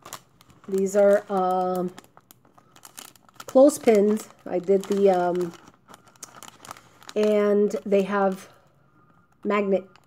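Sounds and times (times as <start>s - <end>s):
cellophane bag crinkling: 0.0s - 10.0s
woman's voice: 0.7s - 2.0s, 3.5s - 5.6s, 7.2s - 8.6s, 9.4s - 9.9s.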